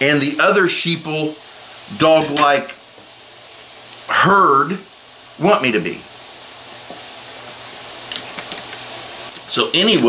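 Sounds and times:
room tone hiss: 0.0s - 10.0s.

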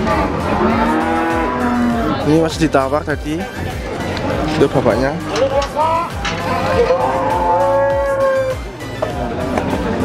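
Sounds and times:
cattle mooing: 0.0s - 2.3s, 4.2s - 8.6s.

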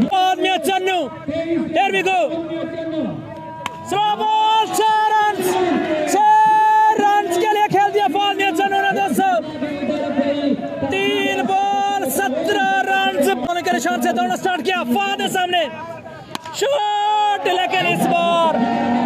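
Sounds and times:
man commentating excitedly: 0.0s - 18.5s
crowd noise: 0.0s - 19.0s
long held shout: 3.3s - 9.4s, 15.6s - 19.0s.

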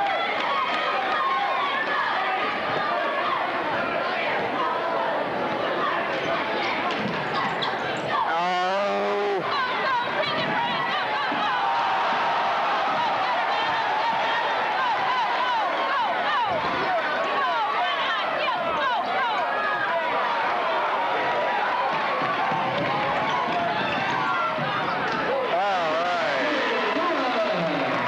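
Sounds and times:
crowd shouting and cheering: 0.0s - 28.0s.

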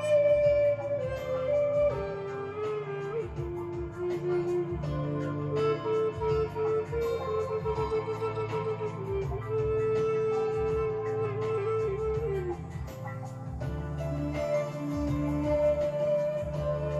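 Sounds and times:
flute playing slow melody: 0.0s - 16.9s
guitar accompaniment: 0.0s - 16.9s.

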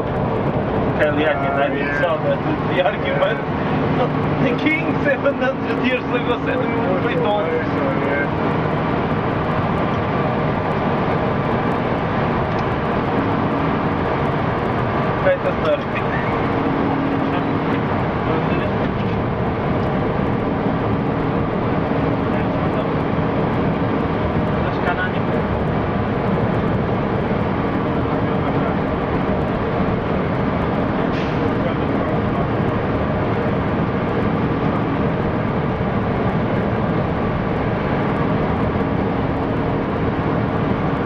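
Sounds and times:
bus engine and road noise: 0.0s - 41.0s.

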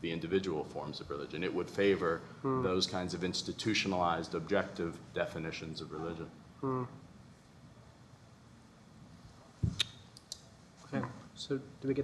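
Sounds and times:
man talking: 0.0s - 7.0s.

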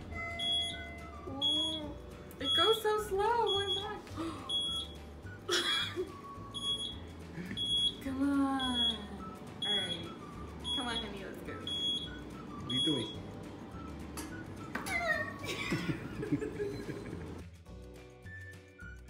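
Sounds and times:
reversing beeper: 0.4s - 2.8s, 8.6s - 13.9s.

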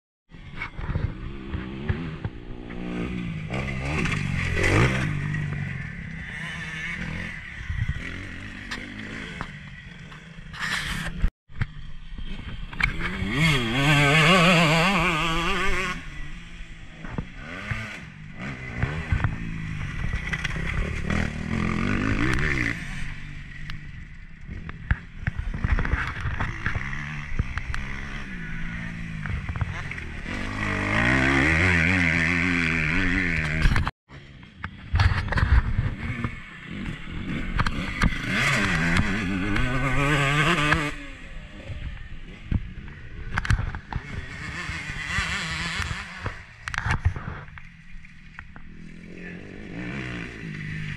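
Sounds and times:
motocross bike engine revving: 0.4s - 50.9s.

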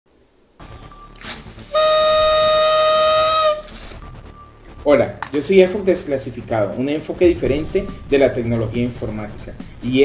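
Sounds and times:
party blower buzzing: 1.2s - 4.0s.

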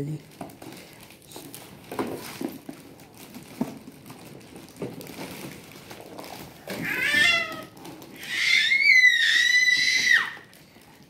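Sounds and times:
toddler crying: 6.7s - 10.5s.

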